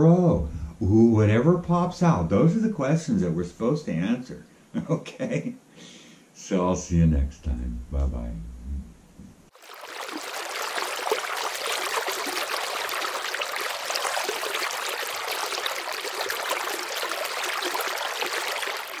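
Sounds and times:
running water splashing: 0:09.5 - 0:19.0.

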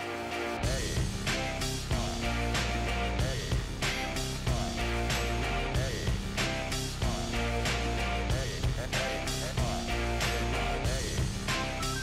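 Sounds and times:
instrumental music with beat: 0:00.6 - 0:12.0.

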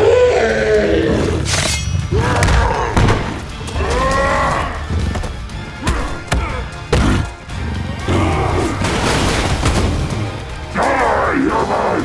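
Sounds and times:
gorilla roaring: 0:00.0 - 0:01.5.

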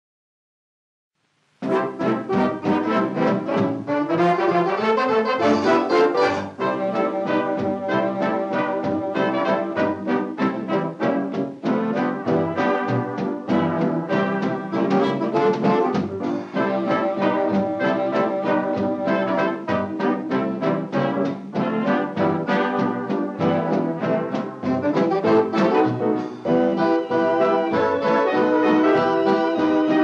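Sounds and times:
swing orchestra with brass: 0:01.4 - 0:30.0.

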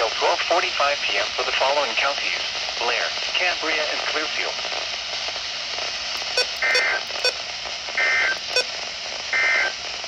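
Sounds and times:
sharp clicks: 0:06.2 - 0:07.4, 0:08.4 - 0:08.7
warbling two-tone data bursts: 0:06.2 - 0:07.4.

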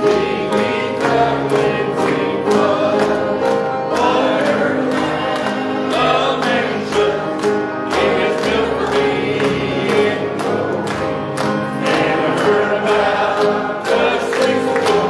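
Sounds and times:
choir singing gospel music: 0:00.0 - 0:15.0.

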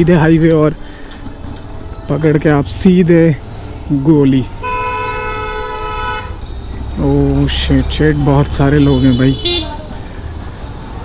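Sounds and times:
motorcycle rumbling: 0:00.0 - 0:11.0
vehicle horn steady tone: 0:04.6 - 0:06.5, 0:08.7 - 0:09.8.

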